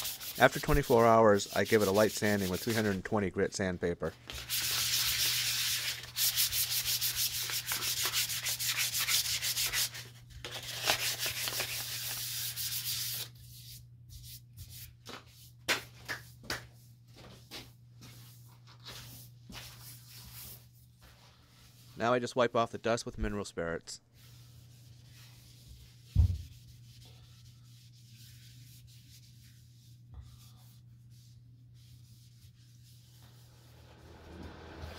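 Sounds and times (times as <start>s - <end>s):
hand sanding with sandpaper: 0.0s - 3.0s, 4.3s - 15.6s, 18.0s - 22.1s, 24.2s - 33.8s.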